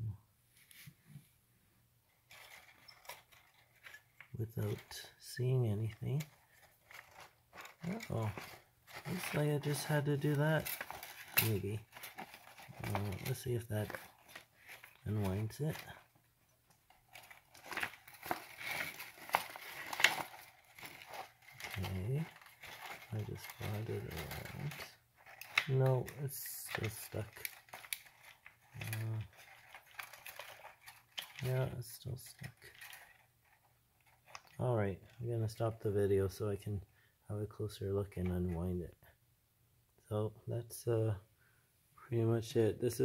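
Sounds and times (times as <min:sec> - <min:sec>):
faint rustling: 0:02.1 - 0:35.8.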